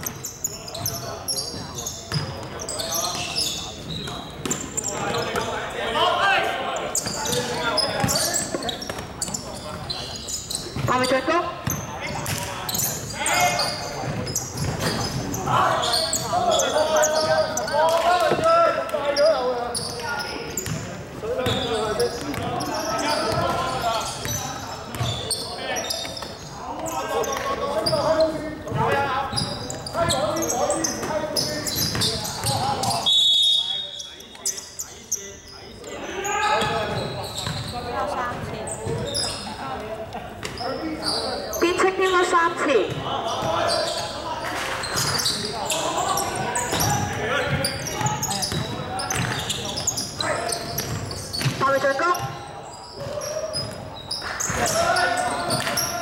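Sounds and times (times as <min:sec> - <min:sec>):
players calling and shouting: 0:00.0 - 0:56.0
high whistle: 0:33.0 - 0:34.1.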